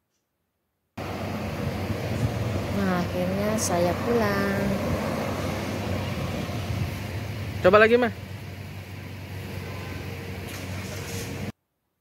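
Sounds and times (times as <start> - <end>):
hum of passing vehicles: 1.0 - 11.5.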